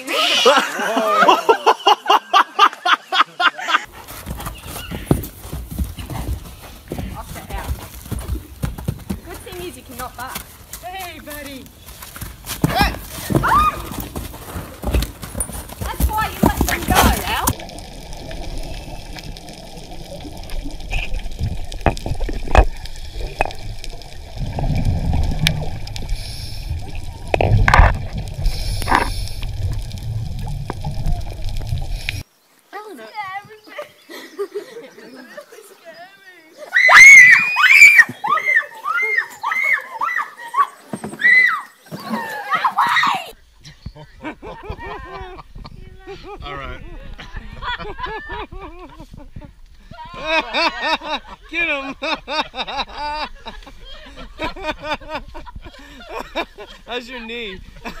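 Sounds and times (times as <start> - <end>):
horse hooves thudding: 3.9 - 32.2
underwater bursts: 16.2 - 32.2
underwater low rumble: 17.2 - 32.2.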